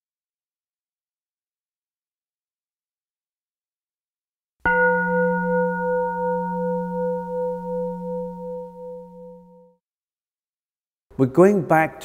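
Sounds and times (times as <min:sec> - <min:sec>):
bell ringing: 0:04.7 - 0:09.7.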